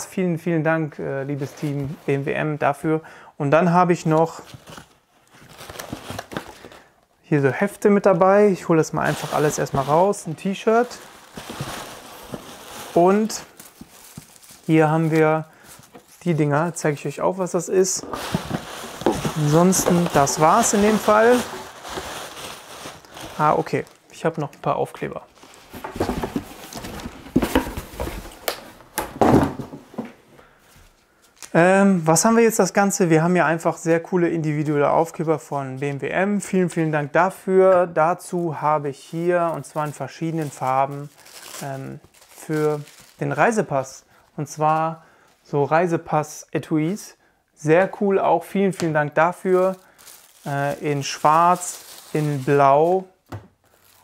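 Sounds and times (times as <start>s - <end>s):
paper packaging crinkling: 4.3s - 6.9s, 8.2s - 24.1s, 25.2s - 28.8s, 39.2s - 43.8s, 49.2s - 54.0s.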